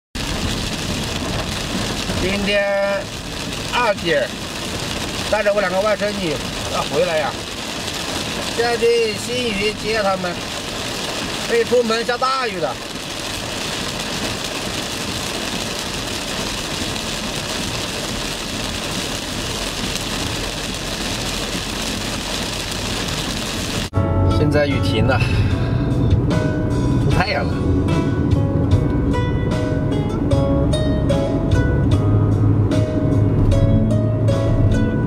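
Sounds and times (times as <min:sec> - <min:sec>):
heavy rain on car roof: 0:00.2 - 0:24.0
engine and road rumble: 0:00.2 - 0:35.0.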